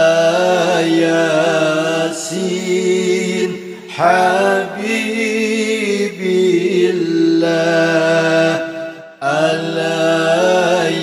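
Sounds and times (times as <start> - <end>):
devotional chant in long notes: 0.0 - 11.0.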